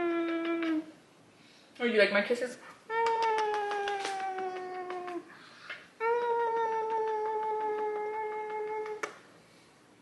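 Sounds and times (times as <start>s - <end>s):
kissing smacks: 0.0s - 0.9s, 2.9s - 9.3s.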